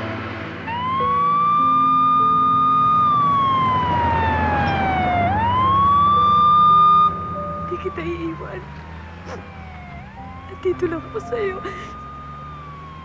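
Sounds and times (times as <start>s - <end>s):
siren wailing: 0.6s - 13.0s.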